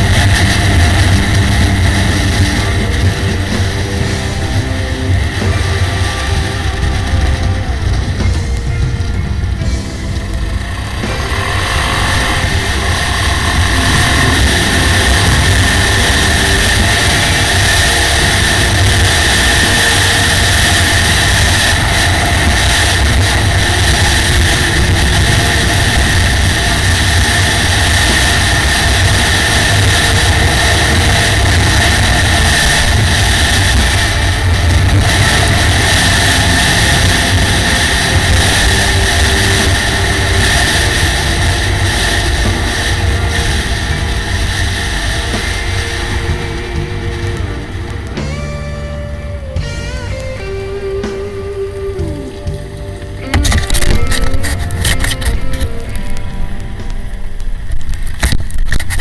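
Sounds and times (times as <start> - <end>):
wind rush on microphone: 0.0 - 49.7
motorcycle engine drone: 0.0 - 59.0.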